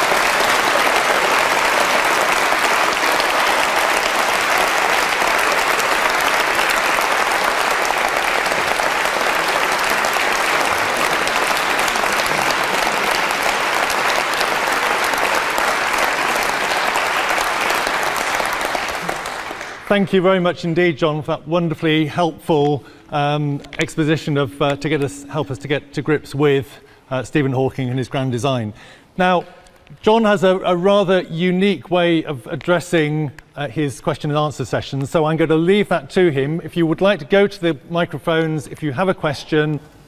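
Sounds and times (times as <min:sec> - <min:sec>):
large audience applauding: 0:00.0 - 0:20.4.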